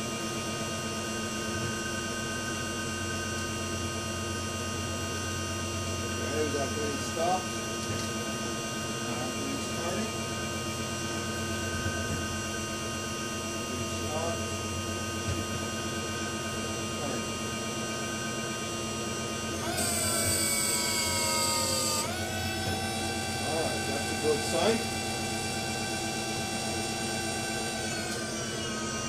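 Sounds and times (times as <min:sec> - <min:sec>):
electric motor and gearbox whine: 0:00.0 - 0:29.0.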